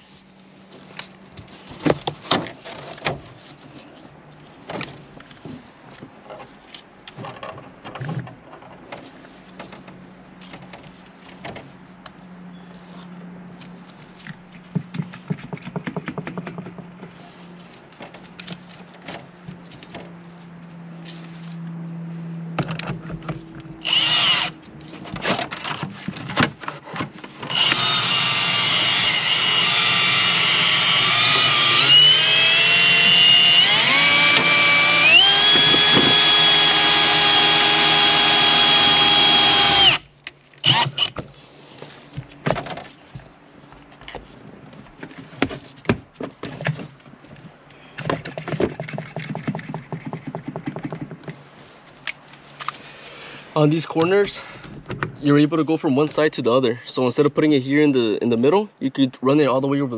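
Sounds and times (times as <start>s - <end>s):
cordless drill running: 23.8s - 24.6s, 27.5s - 40.0s, 40.6s - 41.1s
handling clicks and knocks: 42.0s - 52.8s.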